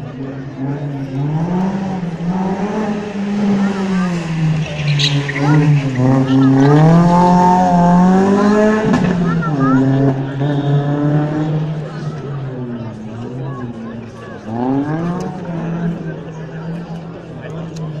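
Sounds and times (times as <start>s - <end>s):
rally car engine passing: 0.0s - 18.0s.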